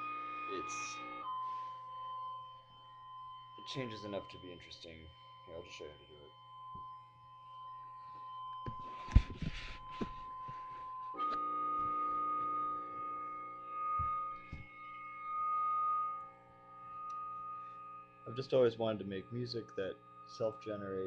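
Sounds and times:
electronic feedback drone: 0.0 - 21.0.

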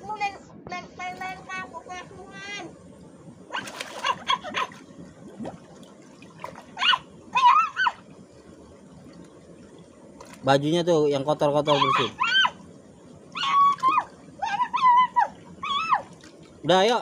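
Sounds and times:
water running in channel: 0.0 - 17.0
water splashing: 0.9 - 17.0
child crying out: 13.4 - 16.1.

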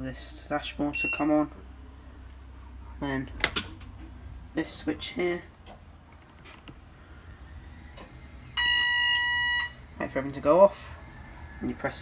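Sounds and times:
dashboard warning buzzer beep: 0.9 - 1.4, 8.6 - 9.8.

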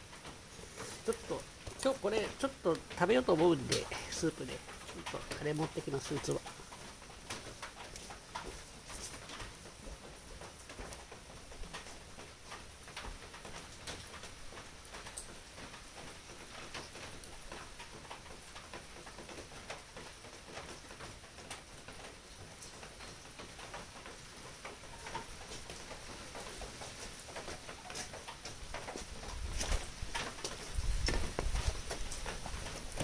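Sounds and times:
rain pattering: 0.0 - 33.0
wood fire crackling and popping: 0.0 - 33.0.

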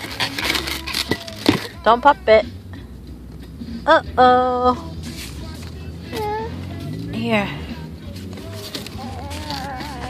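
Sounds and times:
rubber balloon crackling and rubbing: 0.0 - 1.6, 8.1 - 10.0.

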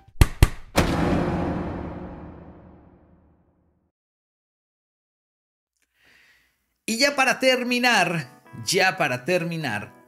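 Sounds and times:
logo stinger hits: 0.8 - 3.5.

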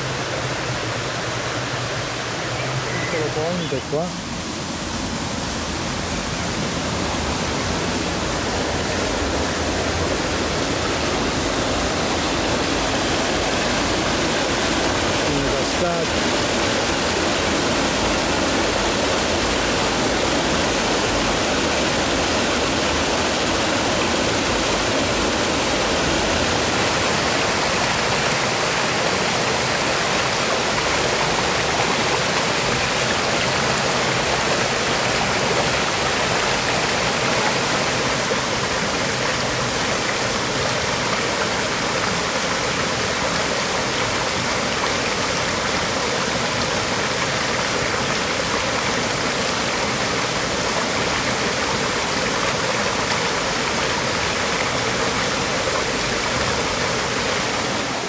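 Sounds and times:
stream rushing over cascades: 0.0 - 58.0.

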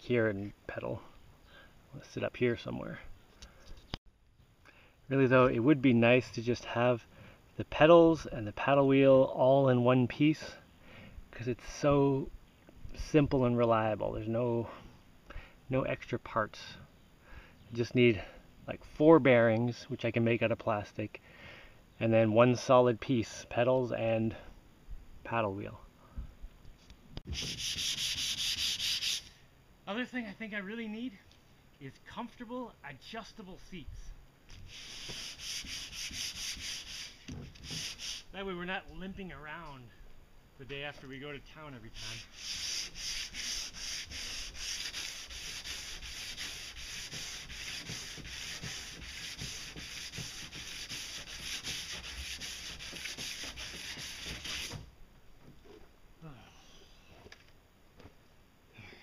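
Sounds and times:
sandpaper rasping on hull: 27.3 - 29.4, 34.7 - 38.4, 41.9 - 54.9.

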